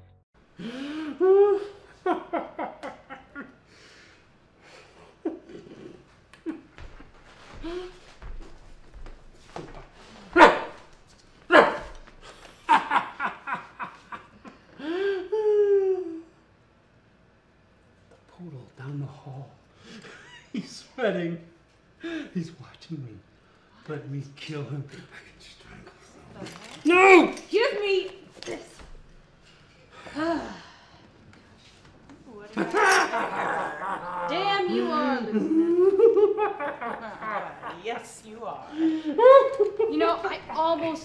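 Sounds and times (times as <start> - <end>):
person sighing: 0.6 - 1.8, 14.8 - 16.4, 29.9 - 31.0
dog barks falling in pitch: 10.4 - 10.8, 11.5 - 11.9.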